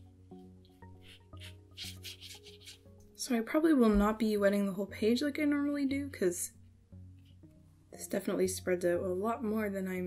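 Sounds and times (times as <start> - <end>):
soft background music: 0.0 - 10.0
brush rubbing on paper: 0.8 - 2.9.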